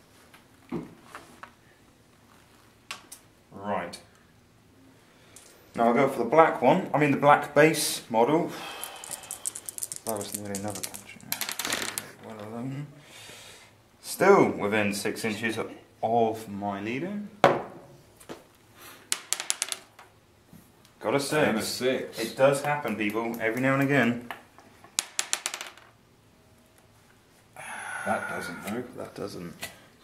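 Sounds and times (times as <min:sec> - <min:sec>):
dice clattering on board: 0:08.8 - 0:12.2, 0:19.1 - 0:20.1, 0:24.9 - 0:26.0
man speaking: 0:10.0 - 0:11.4, 0:28.0 - 0:29.7
die clattering on a board: 0:19.1 - 0:20.0.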